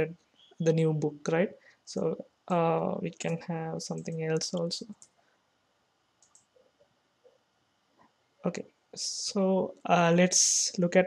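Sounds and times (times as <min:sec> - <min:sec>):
computer mouse clicks: 0:06.2 - 0:06.6.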